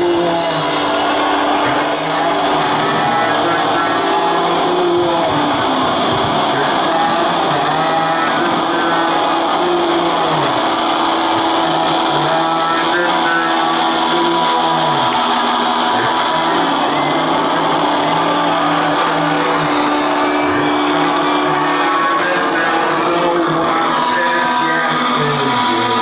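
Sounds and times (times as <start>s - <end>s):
distorted electric guitars: 0.0s - 26.0s
sliding bass line: 0.0s - 26.0s.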